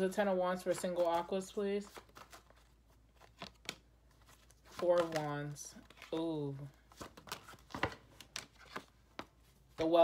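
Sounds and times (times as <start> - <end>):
cards being shuffled: 0.6 - 10.0.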